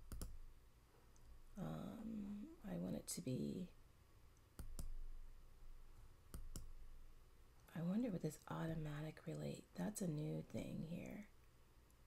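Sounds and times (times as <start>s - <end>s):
computer mouse clicks: 0.0s - 0.4s, 4.4s - 5.0s, 6.3s - 6.8s.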